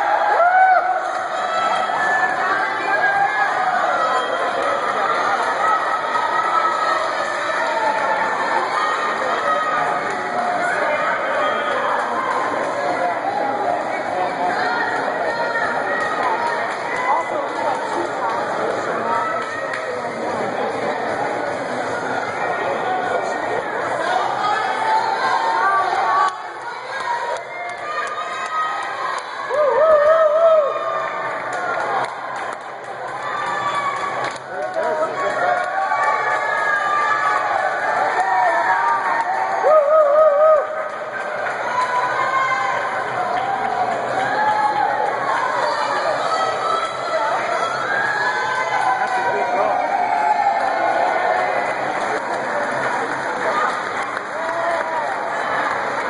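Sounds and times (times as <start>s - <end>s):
spectators cheering and shouting: 0.0s - 56.0s
shouts and voices: 33.1s - 51.8s.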